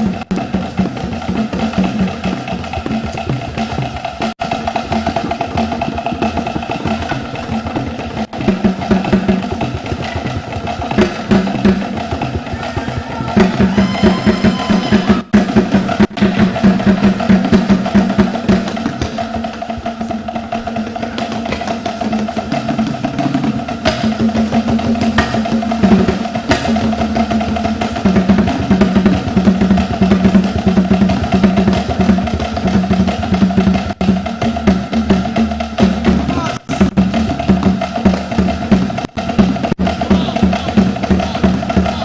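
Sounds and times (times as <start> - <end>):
drum-led percussion music: 0.0 - 42.0.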